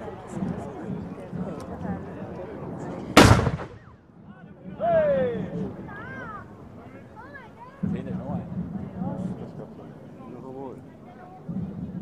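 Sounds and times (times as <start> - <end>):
crowd chatter: 0.0 - 12.0
loud cannon shot: 3.2 - 4.0.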